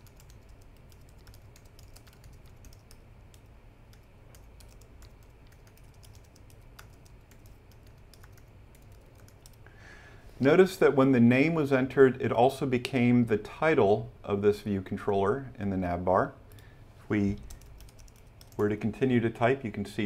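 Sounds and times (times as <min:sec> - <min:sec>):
keyboard typing clicks: 0:00.0 - 0:09.6, 0:17.4 - 0:18.7.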